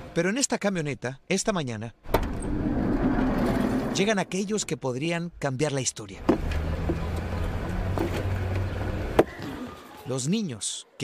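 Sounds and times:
sliding van door opening: 2.2s - 4.1s.

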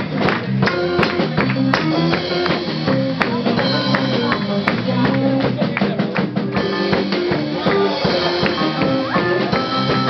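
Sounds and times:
drums: 0.0s - 10.0s
electric guitar: 0.0s - 10.0s.

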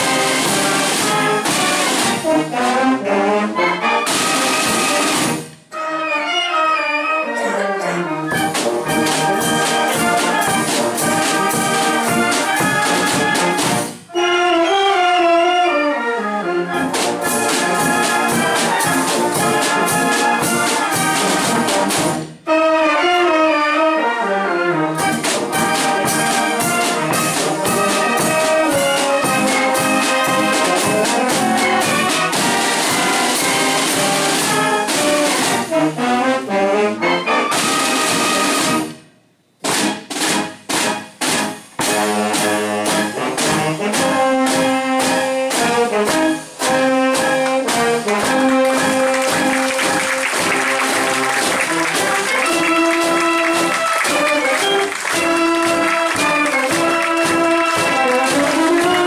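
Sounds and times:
cymbals: 0.0s - 3.2s, 3.8s - 15.6s, 16.7s - 23.5s, 25.0s - 36.3s, 37.3s - 59.0s
snare drums: 0.0s - 5.9s, 8.3s - 14.3s, 16.7s - 23.4s, 24.8s - 36.3s, 37.0s - 59.0s
brass band playing a march: 0.0s - 59.0s.

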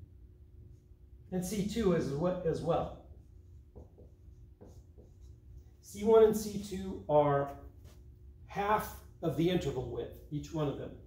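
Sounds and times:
low room hum: 0.0s - 11.0s
marker writing on whiteboard: 3.1s - 5.8s.

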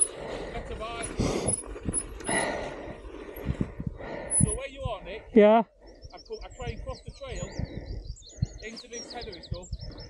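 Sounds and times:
bike rattling and knocking: 0.0s - 5.1s
tyre and wind rush: 0.0s - 5.5s.

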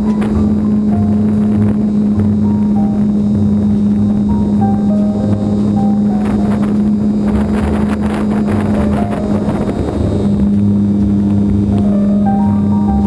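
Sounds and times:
model plane electric motor drone: 0.0s - 12.7s
wind on microphone: 0.0s - 13.0s.

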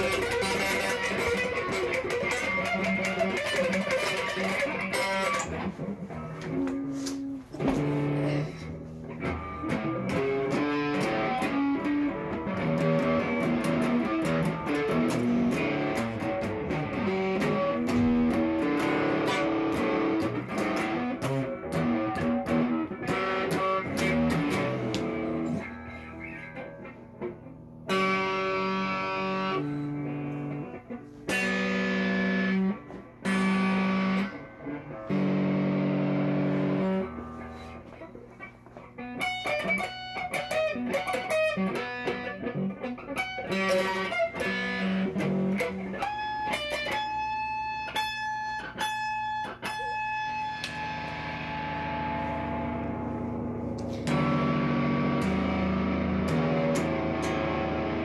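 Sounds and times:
electric guitar playing: 0.0s - 58.0s.

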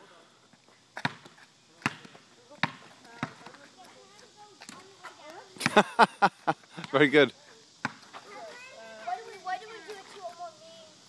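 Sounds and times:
basketball bouncing on asphalt: 0.9s - 5.8s, 7.8s - 8.3s.

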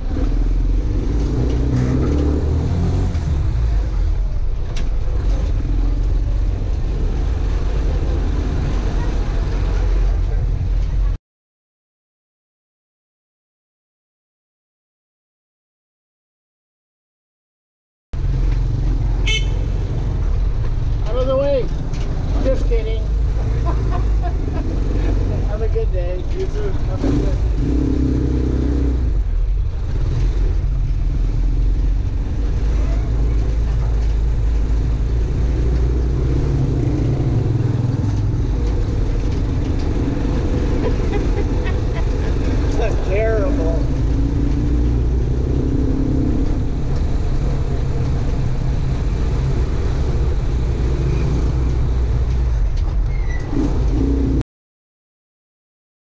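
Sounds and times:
road rumble: 0.0s - 11.2s, 18.2s - 54.4s.

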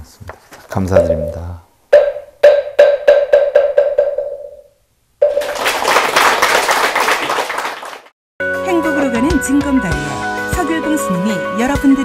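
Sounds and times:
audience applause: 5.4s - 8.1s.

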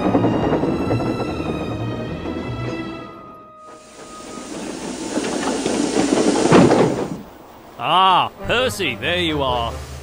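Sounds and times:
steam engines running: 0.0s - 10.0s
steam hissing: 3.6s - 7.3s.

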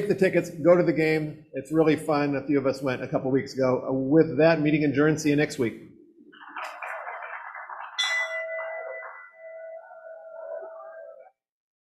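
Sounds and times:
bell ringing: 8.0s - 11.2s.

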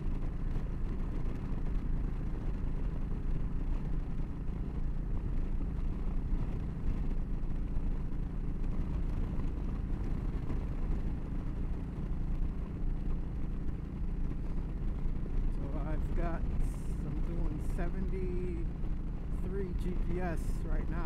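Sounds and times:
motorcycle engine cruising: 0.0s - 21.0s
wind and road noise: 0.0s - 21.0s.

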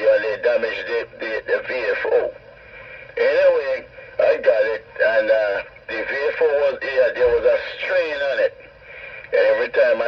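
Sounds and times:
man talking over radio: 0.0s - 10.0s.

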